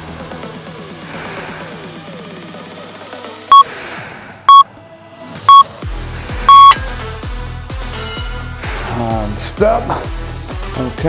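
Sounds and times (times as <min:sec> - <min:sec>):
timer countdown beeps: 0:06.5 - 0:06.9.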